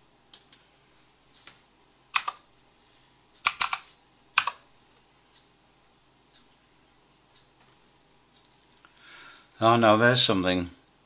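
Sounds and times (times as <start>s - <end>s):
computer keyboard keystrokes: 2.2s - 2.4s, 3.4s - 3.8s, 4.4s - 4.6s.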